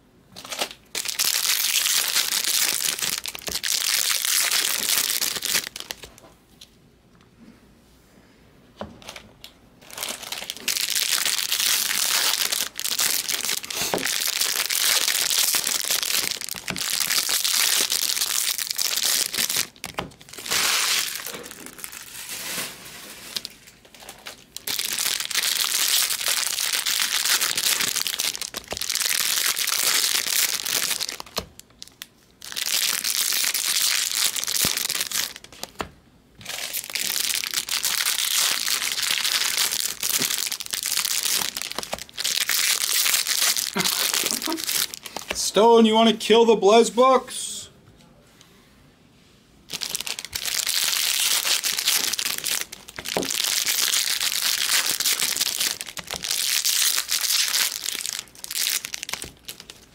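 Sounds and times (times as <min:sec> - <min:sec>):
foil wrappers crinkling and tearing: 0:00.4 - 0:06.2, 0:09.8 - 0:35.8, 0:36.4 - 0:45.5, 0:49.7 - 0:59.9.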